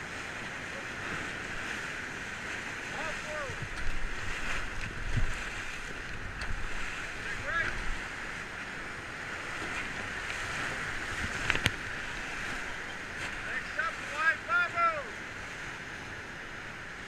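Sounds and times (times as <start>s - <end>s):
whitewater rushing: 0.0s - 17.0s.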